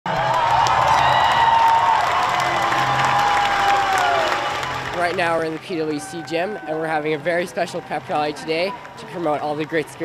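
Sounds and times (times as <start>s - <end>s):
crowd cheering and clapping: 0.1s - 10.0s.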